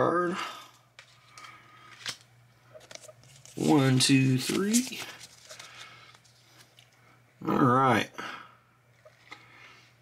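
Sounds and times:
low steady hum: 0.0s - 10.0s
soft card rustle: 0.9s - 7.2s.

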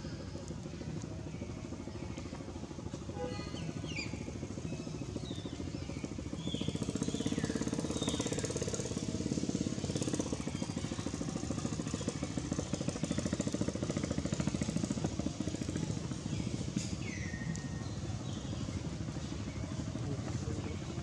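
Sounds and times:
small engine running: 0.0s - 21.0s.

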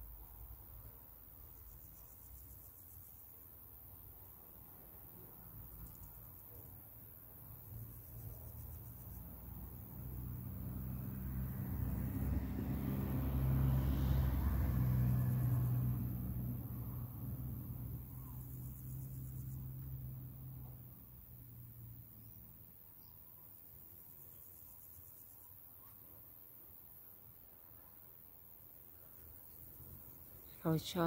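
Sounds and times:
vehicle engine hum passing: 7.7s - 22.7s.

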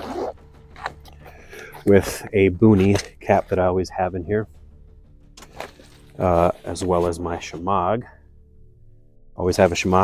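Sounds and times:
zipper pulled open: 0.0s - 2.0s.

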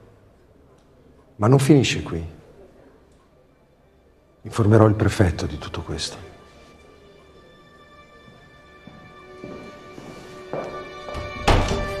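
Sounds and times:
orchestral underscore music: 5.0s - 12.0s
door slamming shut: 11.4s - 12.0s.

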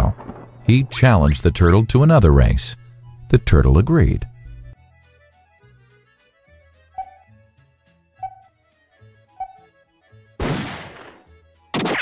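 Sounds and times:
soft background music: 0.0s - 10.4s
short countdown beeps: 7.0s - 7.3s, 8.2s - 8.5s, 9.4s - 9.7s.

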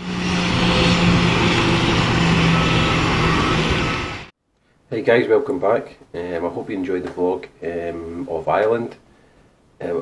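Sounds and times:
jet engines running: 0.0s - 4.3s.

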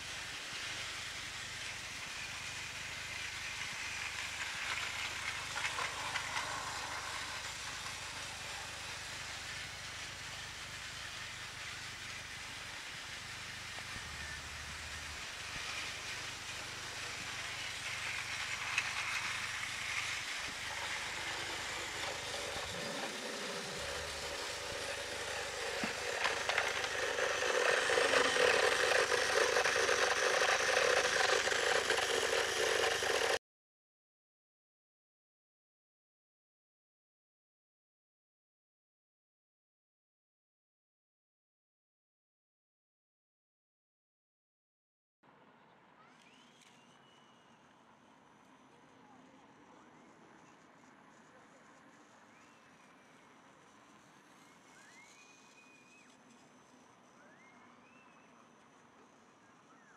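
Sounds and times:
toy train motor whir: 0.0s - 33.4s, 48.3s - 57.4s
toy train wheels rattling: 0.0s - 33.4s.

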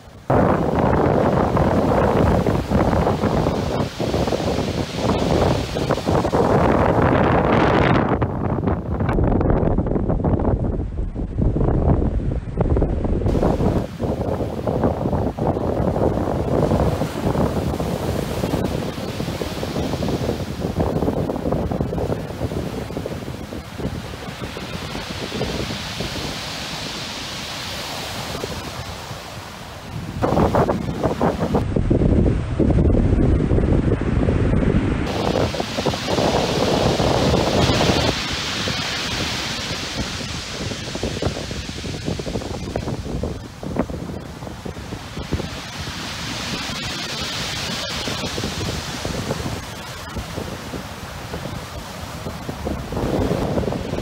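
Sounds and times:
wind buffeting microphone: 0.0s - 54.0s
sea waves breaking: 13.2s - 54.0s.

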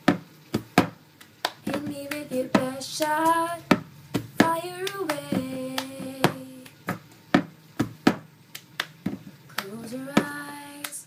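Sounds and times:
hand claps: 0.6s - 7.0s, 8.1s - 9.0s, 9.6s - 11.0s.

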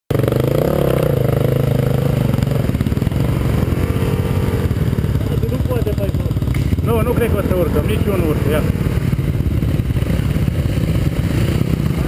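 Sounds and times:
dirt bike engine running: 0.1s - 12.0s.

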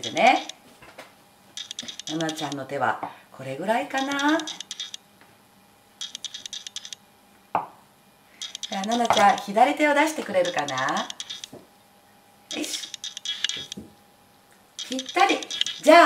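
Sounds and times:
handling clicks: 1.6s - 2.6s, 4.0s - 5.0s, 6.0s - 7.0s, 8.4s - 9.5s, 10.3s - 11.6s, 14.8s - 15.9s
knife clicking on cutting board: 8.6s - 9.5s, 10.4s - 11.6s.

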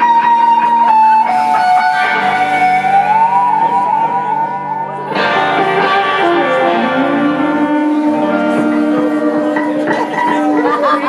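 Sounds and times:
electric guitar lead bending notes: 0.0s - 11.0s
rock band playing: 0.0s - 11.0s.

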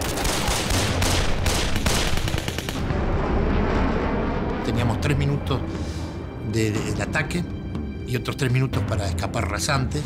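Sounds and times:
rapid gunfire: 0.0s - 2.9s
low rumble: 2.7s - 7.7s.

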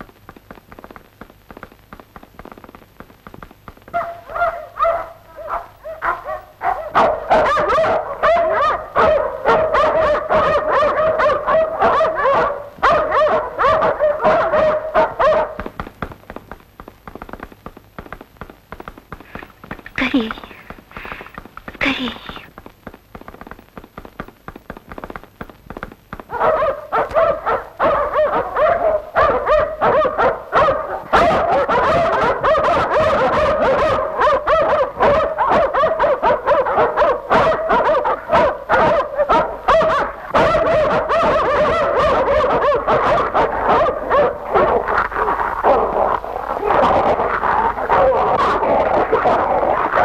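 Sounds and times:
film soundtrack hiss: 0.0s - 50.0s
dog barking: 3.9s - 15.8s, 19.3s - 22.5s, 26.3s - 50.0s
quiet clicks: 15.6s - 26.4s.

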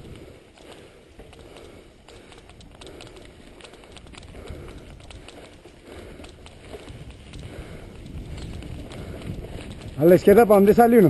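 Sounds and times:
bike clicks and rattles: 0.0s - 11.0s
bike tyres on loose dirt: 0.0s - 11.0s
steady low rumble: 1.3s - 10.5s.

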